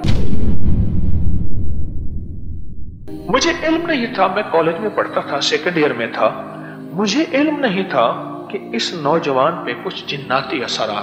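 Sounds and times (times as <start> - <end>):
cinematic boom with deep rumble: 0.0 - 3.9.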